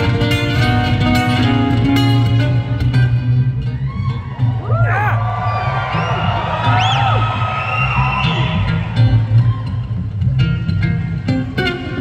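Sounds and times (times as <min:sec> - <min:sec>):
acoustic guitar through pa: 0:00.0 - 0:04.2
audience whoop: 0:03.7 - 0:10.0.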